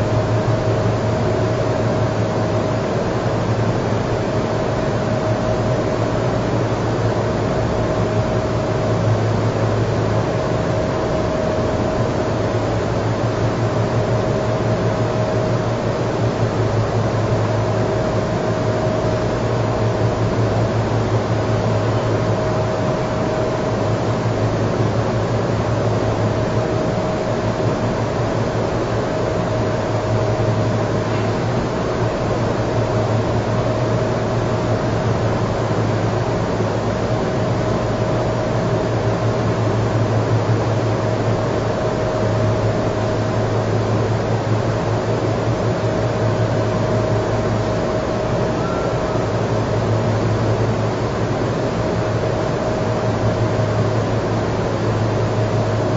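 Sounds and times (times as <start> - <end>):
faint mid-pitched tone: 48.5 - 49.4.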